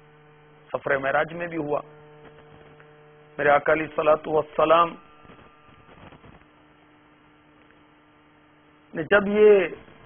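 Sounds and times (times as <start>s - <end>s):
faint electrical hum: 0.0s - 10.0s
man speaking: 0.8s - 1.8s, 3.4s - 5.0s, 8.9s - 9.8s.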